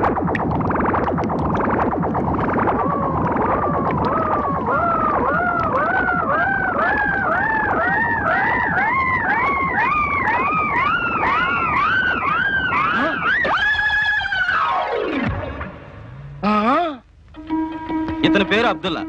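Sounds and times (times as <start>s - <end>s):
synthesizer swoops climbing in pitch: 0.0s - 13.6s.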